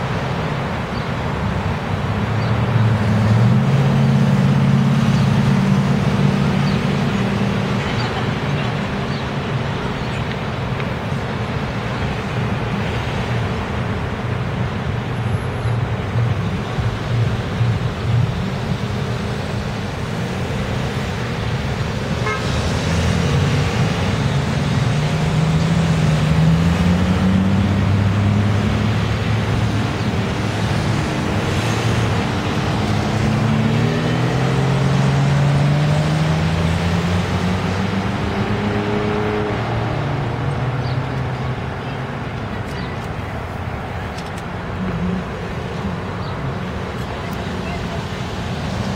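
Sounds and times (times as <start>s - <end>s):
street traffic noise: 0.0s - 48.9s
vehicle engines accelerating: 0.0s - 48.9s.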